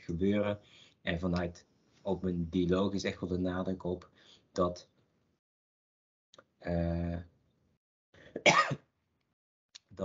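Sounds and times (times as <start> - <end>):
person coughing: 8.3 - 8.9.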